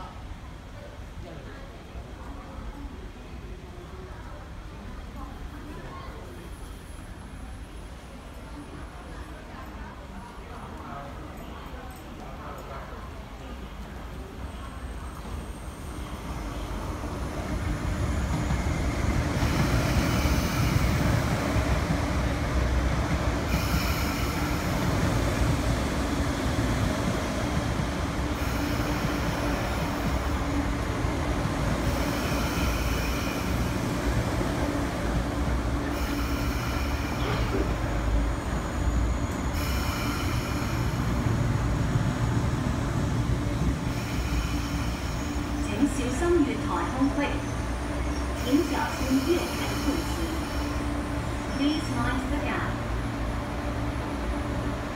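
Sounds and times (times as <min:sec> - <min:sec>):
electric train slowing to a stop: 0:06.3 - 0:54.9
high-pitched train squeals: 0:35.9 - 0:41.2, 0:43.9 - 0:46.0, 0:46.7 - 0:52.2.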